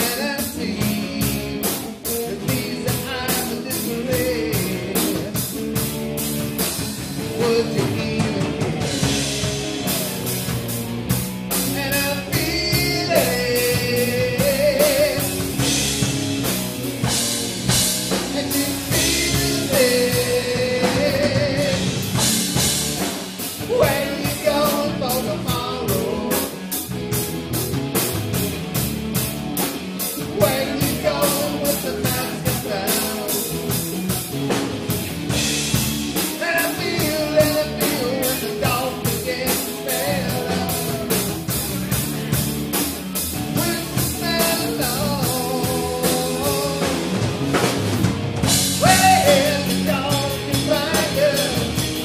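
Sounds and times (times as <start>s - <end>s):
male lead vocal: 0.0s - 5.5s, 7.2s - 9.2s, 11.5s - 16.0s, 17.7s - 22.3s, 23.5s - 26.9s, 30.0s - 34.0s, 36.2s - 42.3s, 43.4s - 47.4s, 48.6s - 52.0s
drum kit beat: 0.0s - 52.0s
rock band playing: 0.0s - 52.0s.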